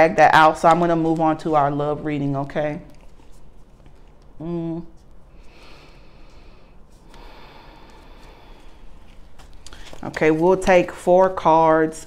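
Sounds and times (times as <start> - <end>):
person breathing into microphone: 5.3 - 10.0.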